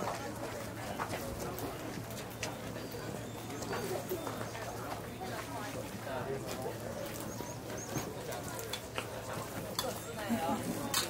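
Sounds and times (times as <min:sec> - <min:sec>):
distant people talking: 0:00.0 - 0:11.0.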